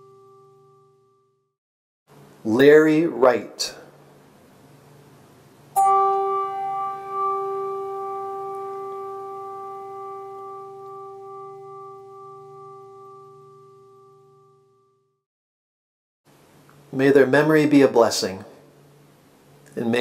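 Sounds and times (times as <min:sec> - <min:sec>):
bell ringing: 0:05.8 - 0:14.9.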